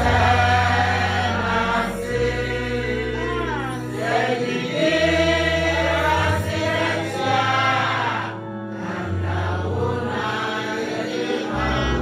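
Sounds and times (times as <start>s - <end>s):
group singing: 0.0s - 12.0s.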